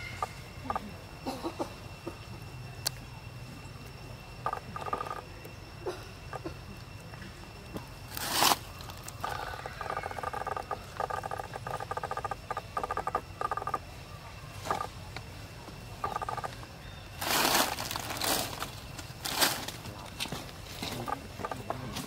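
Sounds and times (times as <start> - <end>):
animal buzzy pulsed calls: 0.0 - 2.2, 4.3 - 6.7, 8.1 - 15.1, 15.9 - 18.5.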